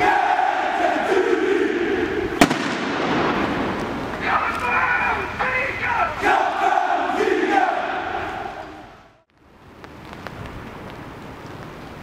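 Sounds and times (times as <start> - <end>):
football fans chanting and shouting: 0.0 - 9.2
firecracker bang: 2.4 - 4.3.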